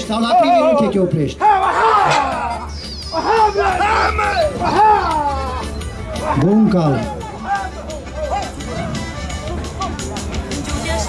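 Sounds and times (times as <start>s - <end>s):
background music: 0.0s - 11.0s
loud voices calling out: 0.0s - 11.0s.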